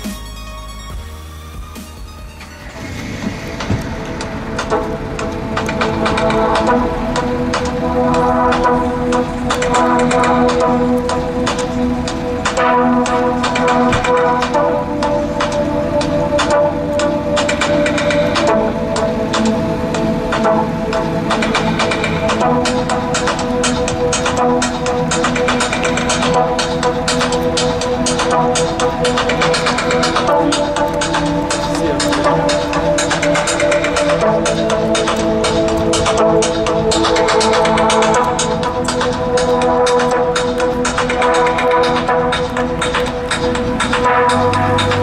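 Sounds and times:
loud electronic music from car speakers: 0.0 - 45.0.

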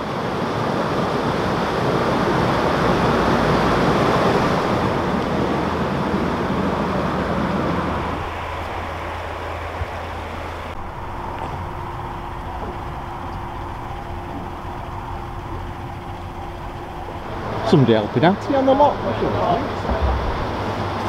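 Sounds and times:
low steady hum: 0.0 - 21.0
water rushing into lock chamber: 0.0 - 21.0.

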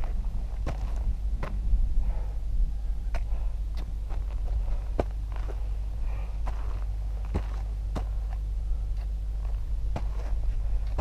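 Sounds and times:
footsteps on gravel path: 0.0 - 2.2, 3.1 - 11.0
low rumble: 0.0 - 11.0
trekking pole strikes: 9.5 - 11.0.

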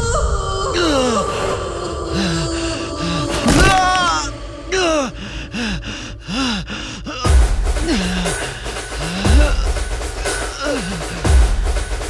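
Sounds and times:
droning background music: 0.0 - 12.0
man groaning in pain: 3.3 - 5.2, 6.3 - 11.3.

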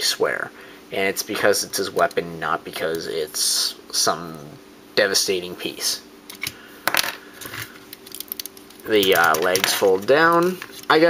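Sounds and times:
plastic parts clicking: 7.4 - 10.6.

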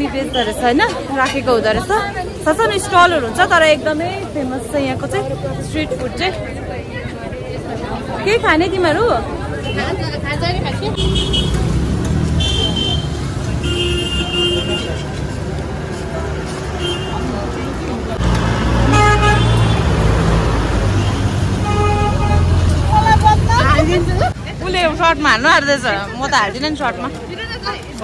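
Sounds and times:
traffic engine rumble: 0.0 - 28.0
vehicle horns tooting: 11.0 - 15.2, 18.8 - 20.0, 20.9 - 23.2.

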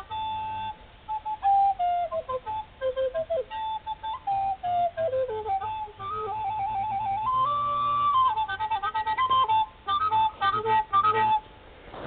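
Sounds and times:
flute melody: 0.0 - 12.0.

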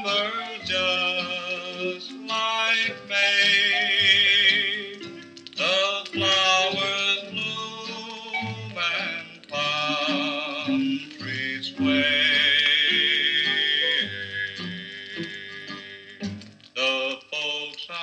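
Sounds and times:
person singing: 0.0 - 18.0
rockabilly band playing: 0.0 - 18.0.

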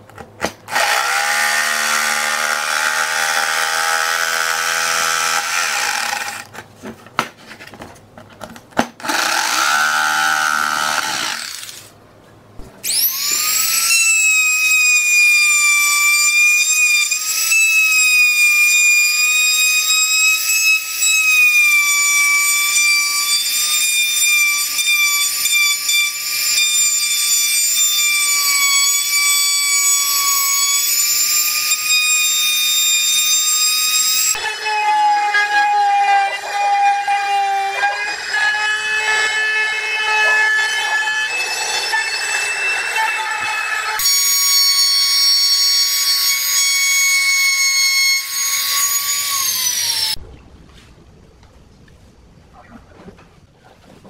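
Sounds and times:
jigsaw cutting plywood: 0.4 - 6.5, 9.0 - 11.8, 37.4 - 50.2
trim router whining: 12.8 - 50.2.

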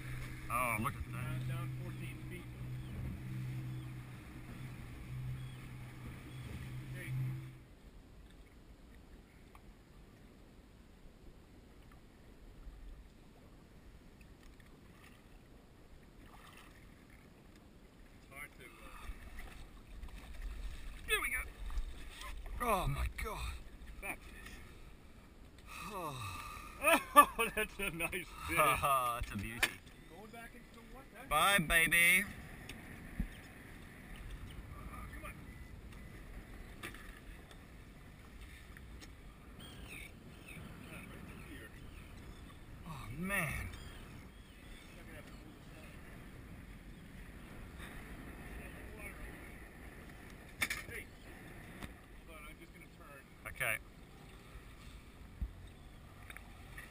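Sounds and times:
water noise: 0.0 - 56.9
wind: 0.0 - 56.9
water against boat hull: 16.0 - 24.8, 28.7 - 31.1.

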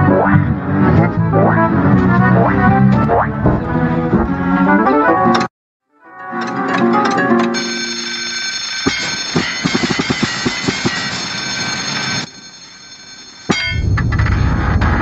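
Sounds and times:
cartoon music: 0.0 - 3.8
sustained pitched tones: 0.0 - 4.5
low rumbling noise: 13.8 - 15.0.

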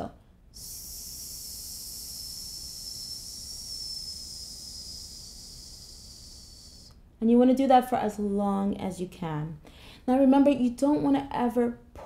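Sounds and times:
woman exhaling in steady hiss: 0.6 - 7.0.

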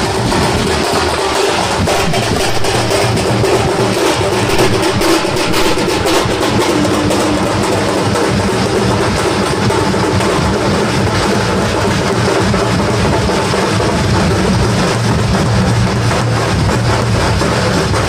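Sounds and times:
drum band beating drums: 0.0 - 18.0
pitched music: 0.0 - 18.0.

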